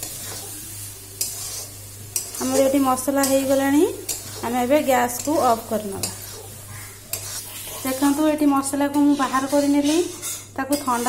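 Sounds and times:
light frying sizzle: 0:00.0 - 0:11.0
metal spatula stirring in a pan: 0:00.0 - 0:11.0
spatula scraping pan: 0:00.0 - 0:11.0.

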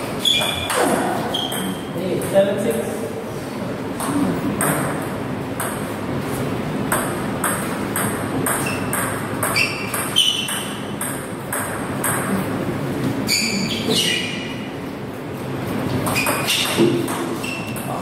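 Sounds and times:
high squeaks: 0:00.1 - 0:01.9, 0:08.5 - 0:10.8, 0:13.2 - 0:14.6, 0:16.1 - 0:16.8, 0:17.4 - 0:18.0.

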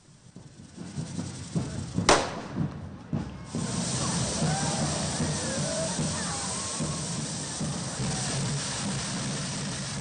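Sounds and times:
firecracker bang: 0:00.4 - 0:10.0.

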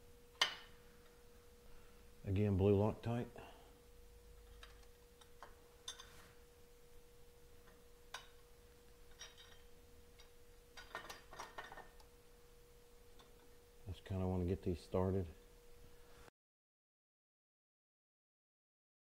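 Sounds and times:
faint hum tone: 0:00.0 - 0:16.3.

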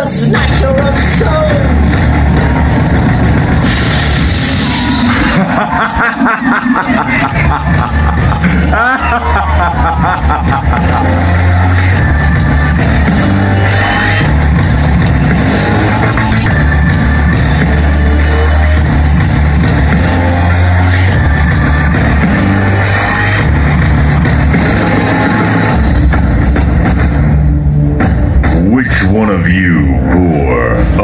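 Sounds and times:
deep bass line: 0:00.0 - 0:31.0
show music over sound system: 0:00.0 - 0:31.0.

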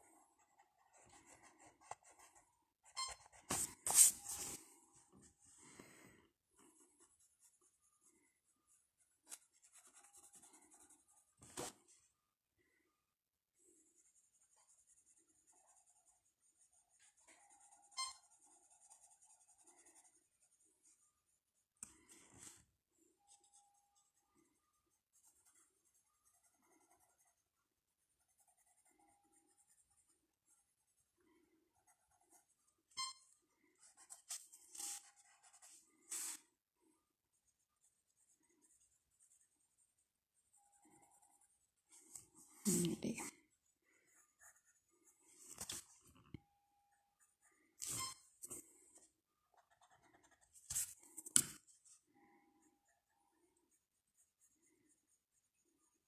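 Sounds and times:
pencil scratching on paper: 0:00.0 - 0:05.6, 0:06.6 - 0:11.9, 0:13.6 - 0:22.6, 0:23.2 - 0:36.5, 0:37.3 - 0:46.0, 0:47.1 - 0:52.0, 0:52.6 - 0:56.0.

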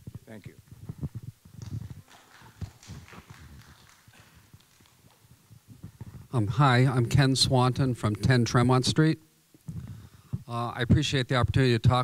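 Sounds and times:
auditorium room sound: 0:00.2 - 0:09.2.

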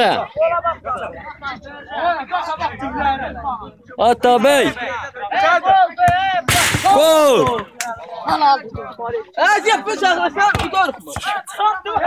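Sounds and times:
young men calling out: 0:04.0 - 0:12.0
football struck hard: 0:06.1 - 0:07.0.

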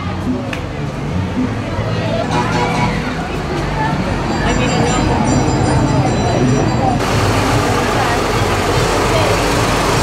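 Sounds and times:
crowd voices: 0:00.0 - 0:10.0
tractor engine running: 0:07.0 - 0:10.0.

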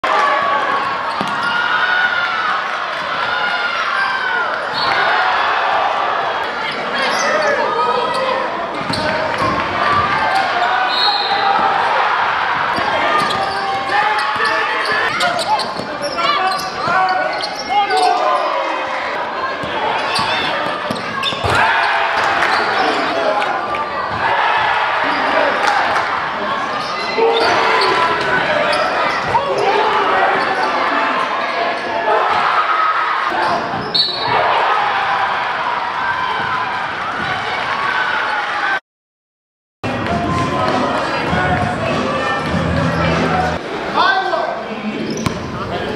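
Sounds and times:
crowd voices and shouting: 0:00.0 - 0:38.8, 0:39.8 - 0:45.9.

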